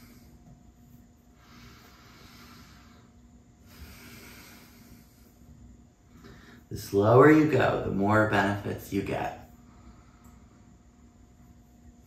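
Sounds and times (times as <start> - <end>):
hissy breathing: 0.0 - 6.8, 9.5 - 11.1
low room hum: 0.0 - 12.0.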